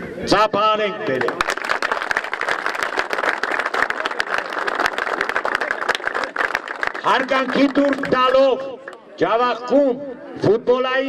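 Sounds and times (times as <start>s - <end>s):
crowd applauding: 1.1s - 9.0s.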